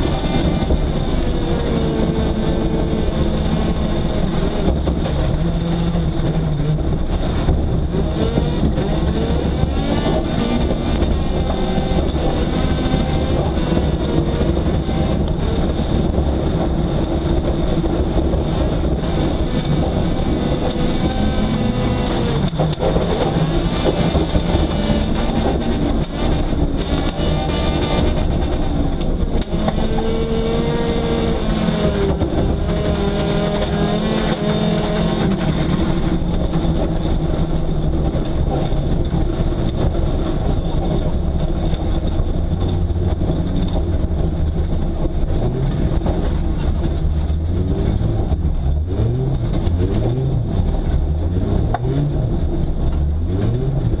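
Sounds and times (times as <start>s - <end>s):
car engine revving: 0.0s - 54.0s.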